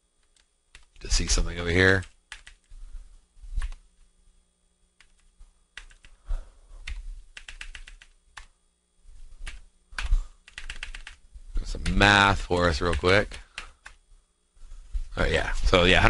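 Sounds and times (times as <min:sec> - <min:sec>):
typing on computer keyboard: 0:00.2 - 0:01.0, 0:02.0 - 0:02.7, 0:03.6 - 0:03.8, 0:05.8 - 0:06.2, 0:06.8 - 0:08.5, 0:09.4 - 0:11.2, 0:11.8 - 0:14.0.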